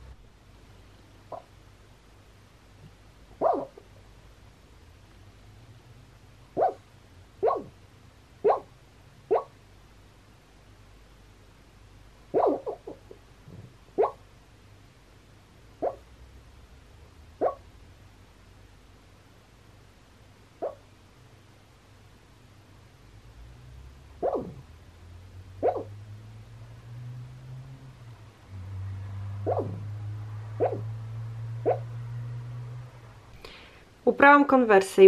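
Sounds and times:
sleeping dog woofing and yipping: 0:01.3 - 0:01.5, 0:03.3 - 0:03.9, 0:06.5 - 0:07.8, 0:08.4 - 0:09.6, 0:12.3 - 0:14.2, 0:15.8 - 0:16.1, 0:17.4 - 0:17.7, 0:20.6 - 0:20.9, 0:24.2 - 0:24.7, 0:25.6 - 0:26.0, 0:29.4 - 0:29.9, 0:30.5 - 0:31.0, 0:31.6 - 0:32.0.

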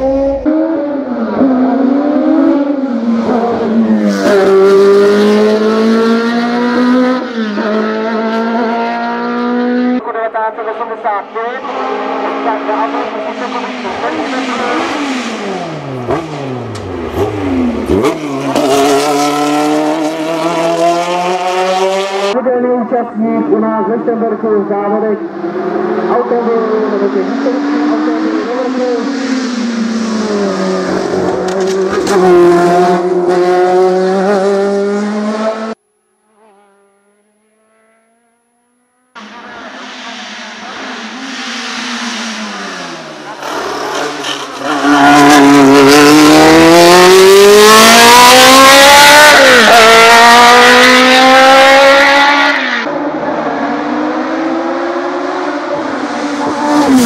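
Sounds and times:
racing car engine revving: 0:00.0 - 0:10.0, 0:11.2 - 0:22.4, 0:25.1 - 0:57.0.

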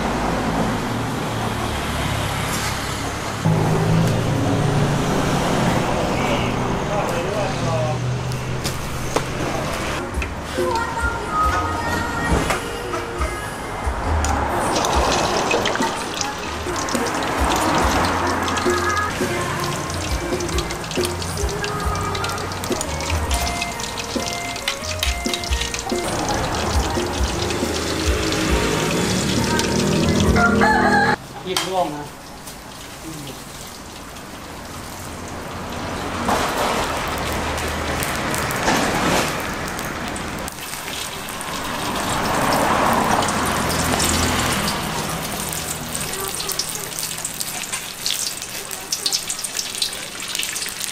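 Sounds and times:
background voices: 0:09.4 - 0:24.2
music: 0:10.0 - 0:31.2
hot oil sizzling: 0:14.5 - 0:50.9.

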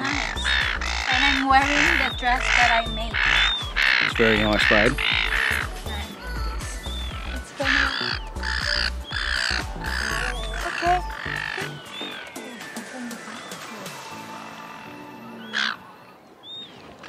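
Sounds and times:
background music: 0:00.0 - 0:16.4
gulls calling: 0:00.0 - 0:17.0.

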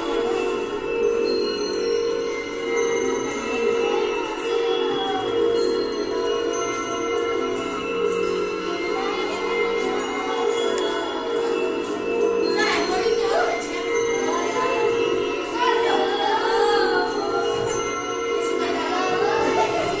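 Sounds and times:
chime-like tones: 0:00.0 - 0:20.0
girl singing: 0:12.5 - 0:20.0.

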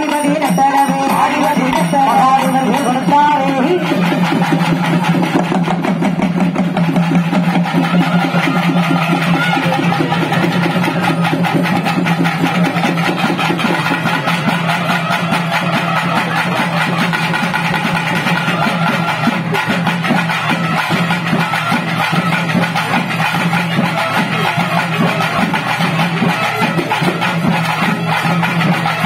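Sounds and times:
fast drumming: 0:00.0 - 0:29.0.

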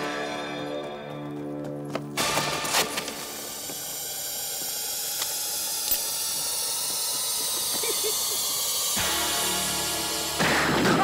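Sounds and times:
hissing drone with high tones: 0:02.5 - 0:11.0.

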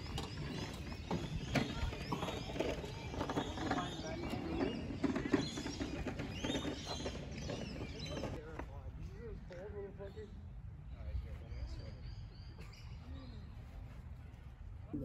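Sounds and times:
voices chattering: 0:00.0 - 0:10.4
small birds chirping: 0:00.0 - 0:14.6.

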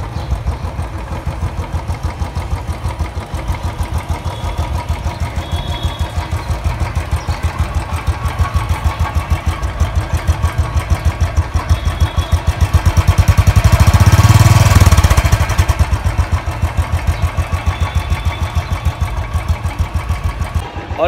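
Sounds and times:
motorcycle engine idling and revving: 0:00.0 - 0:21.0.

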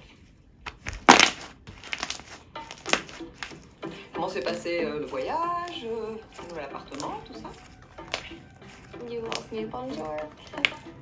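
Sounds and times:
slime squeezed popping: 0:00.7 - 0:03.6.

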